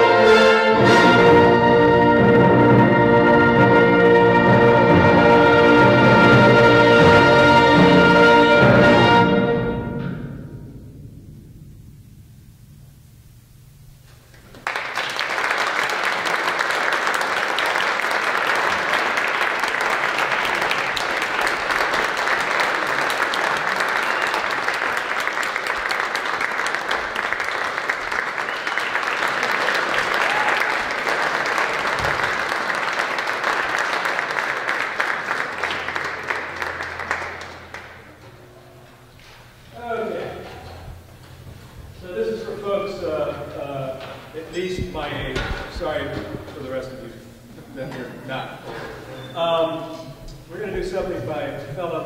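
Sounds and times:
audience applauding: 0:14.3 - 0:38.6.

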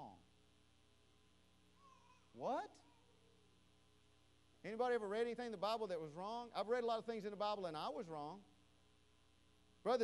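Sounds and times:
faint steady hum: 0:00.0 - 0:10.0
man speaking: 0:02.4 - 0:02.8, 0:04.7 - 0:08.5.

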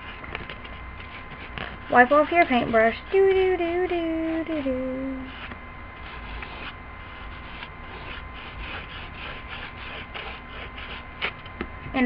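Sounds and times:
paintbrush rubbing on paper: 0:05.2 - 0:11.4.

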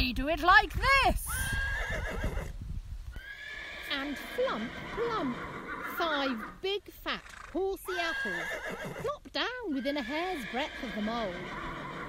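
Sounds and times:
horse neighing: 0:01.3 - 0:02.5, 0:03.2 - 0:06.6, 0:07.2 - 0:12.0.

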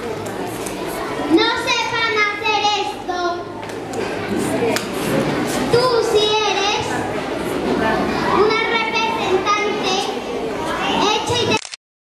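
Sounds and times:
children talking and calling out: 0:00.0 - 0:11.7.

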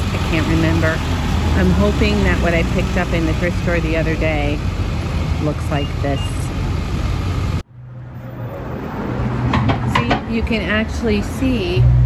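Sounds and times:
vehicle engine idling: 0:00.0 - 0:07.6.

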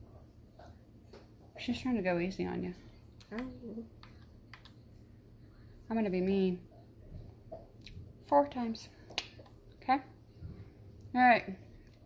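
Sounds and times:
woman speaking: 0:01.6 - 0:02.9, 0:05.9 - 0:06.7, 0:09.8 - 0:10.2, 0:11.1 - 0:11.6.

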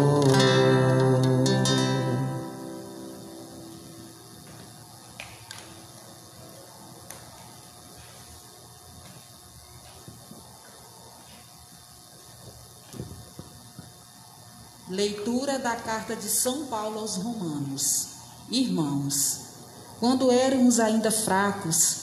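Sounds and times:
faint room hiss: 0:00.0 - 0:08.1.

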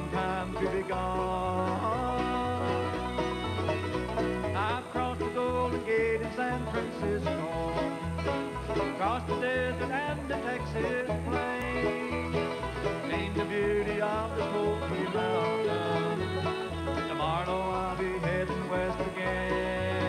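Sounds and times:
fiddle sliding notes: 0:00.0 - 0:20.0
guitar picking: 0:00.0 - 0:20.0
picked banjo: 0:00.0 - 0:20.0
upright bass: 0:00.0 - 0:20.0.

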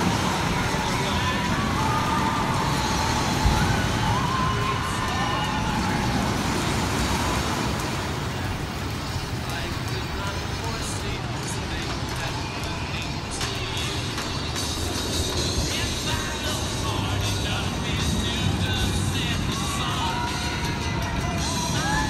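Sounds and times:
distant voices calling out: 0:00.0 - 0:22.0
low rumble of noise: 0:00.0 - 0:22.0.

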